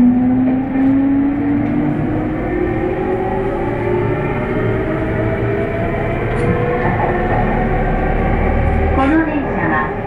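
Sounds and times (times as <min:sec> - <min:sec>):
train rumbling from inside carriage: 0:00.0 - 0:10.0.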